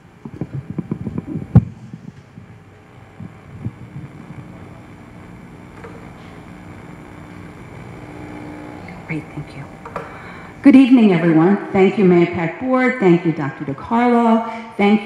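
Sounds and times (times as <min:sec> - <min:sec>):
faint public address hum: 0:00.0 - 0:15.0.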